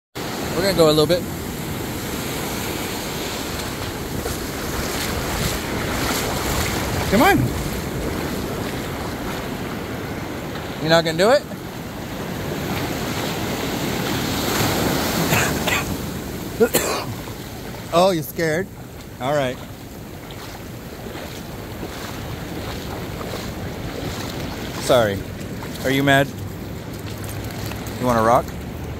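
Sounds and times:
surf washing over sand: 0.2s - 28.9s
wind noise on microphone: 1.6s - 10.3s.

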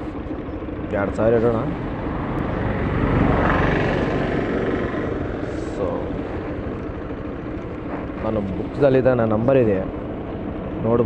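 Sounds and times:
vehicle engine running: 0.0s - 11.0s.

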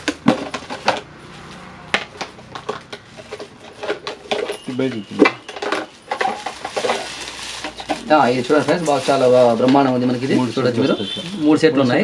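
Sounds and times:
plastic containers clattering: 0.0s - 12.0s.

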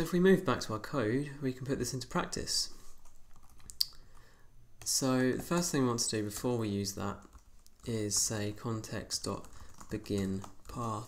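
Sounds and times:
computer keyboard clicks: 9.4s - 10.8s.

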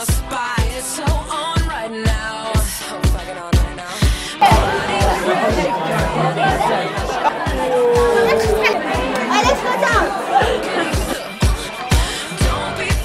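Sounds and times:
crowd chatter: 4.4s - 12.4s.

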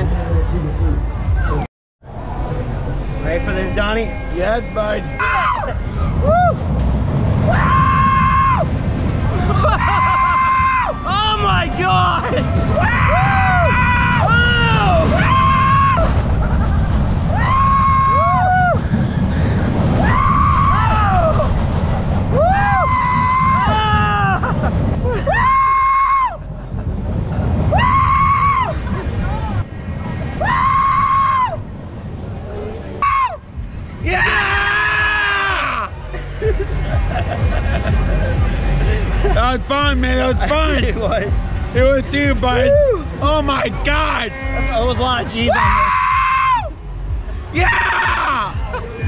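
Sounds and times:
wind rumble on microphone: 0.0s - 49.0s
men screaming: 3.5s - 6.6s, 7.4s - 16.3s, 17.3s - 21.6s, 22.3s - 26.4s, 27.7s - 29.6s, 30.4s - 31.6s, 34.0s - 36.0s, 42.5s - 43.4s, 44.0s - 46.8s, 47.6s - 48.9s.

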